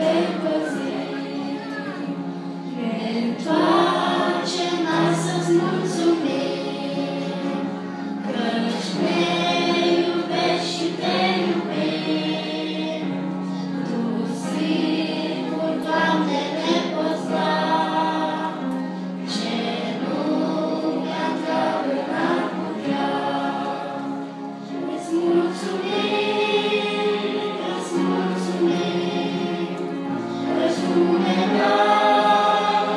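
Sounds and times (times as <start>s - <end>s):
choir singing a hymn: 0.0s - 32.9s.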